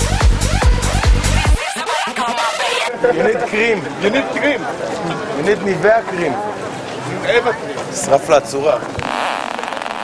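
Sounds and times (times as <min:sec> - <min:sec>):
crowd chatter: 0:01.3 - 0:09.8
people talking: 0:01.6 - 0:08.9.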